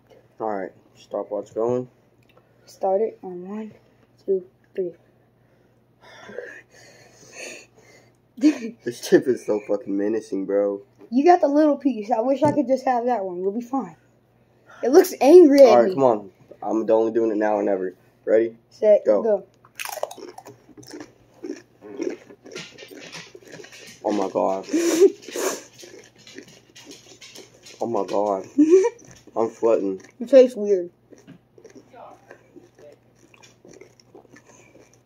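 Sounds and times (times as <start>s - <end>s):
boy laughing breathily: 8.4s - 8.8s, 24.7s - 25.6s, 28.6s - 29.0s
chip being chewed: 19.8s - 35.0s.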